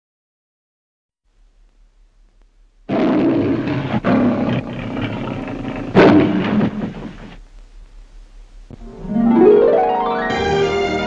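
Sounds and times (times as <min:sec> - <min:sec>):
faint low hum: 0:01.3 - 0:10.7
lion roaring: 0:02.9 - 0:07.4.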